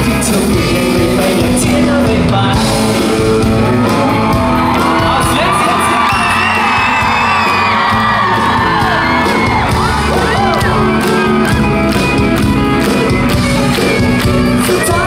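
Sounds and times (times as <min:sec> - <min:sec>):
live band playing: 0:00.0 - 0:15.0
audience screaming and whooping: 0:03.1 - 0:15.0.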